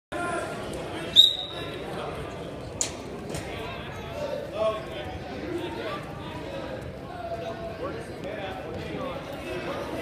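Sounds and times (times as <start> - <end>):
voices echoing in gym: 0.1 - 10.0
referee's whistle: 1.1 - 1.7.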